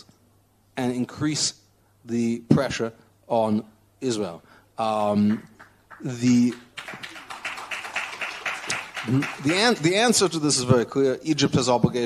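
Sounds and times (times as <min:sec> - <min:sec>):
audience clapping: 0:05.1 - 0:10.7.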